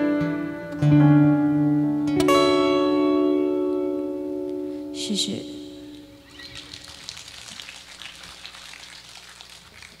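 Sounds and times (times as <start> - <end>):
band chord ringing out: 0.0 - 6.3
audience applauding: 6.4 - 10.0.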